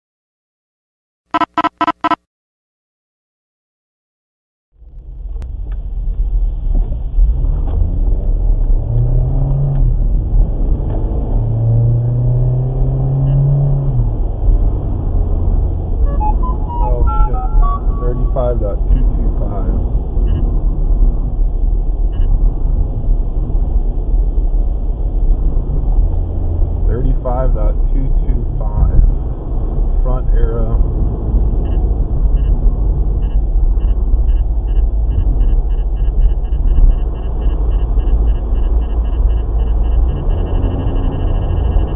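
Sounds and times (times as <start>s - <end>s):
short electronic beeps: 1.3s - 2.2s, 16.0s - 19.6s, 33.2s - 41.9s
road and engine noise in car: 4.8s - 41.9s.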